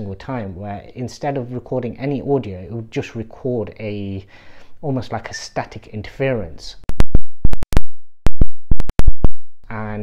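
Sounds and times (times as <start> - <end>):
sharp digital pops: 6.9 - 9.4.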